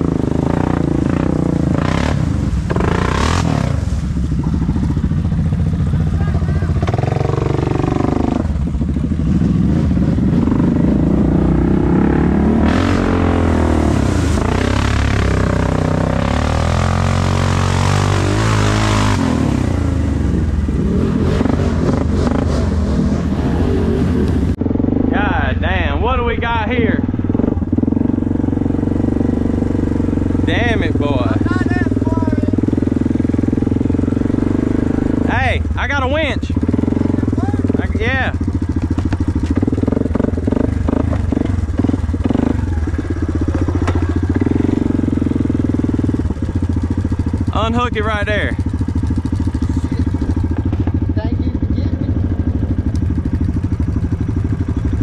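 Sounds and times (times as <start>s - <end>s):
atv engine running: 0.0s - 55.0s
voices calling out: 42.5s - 44.8s.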